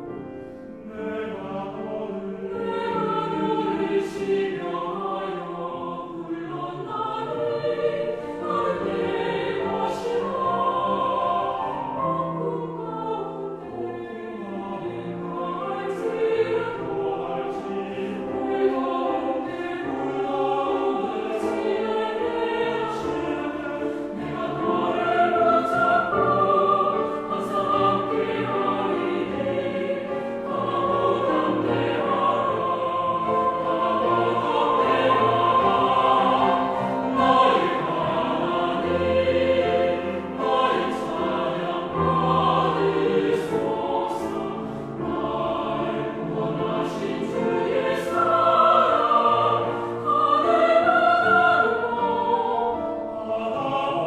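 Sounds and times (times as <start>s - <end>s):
choir singing in harmony: 0.0s - 54.0s.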